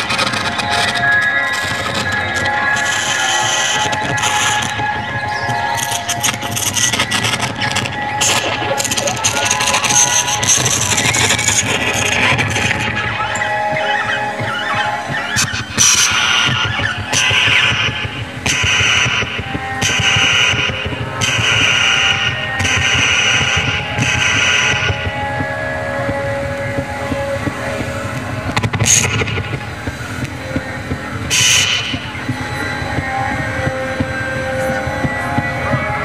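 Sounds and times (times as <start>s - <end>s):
dense rumbling drone: 0.0s - 36.0s
harsh hissing noise blocks: 0.0s - 36.0s.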